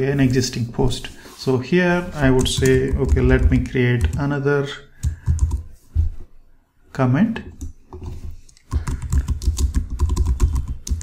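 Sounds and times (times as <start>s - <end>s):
keystrokes on computer keyboard: 2.4s - 4.2s, 5.0s - 5.7s, 7.5s - 11.0s.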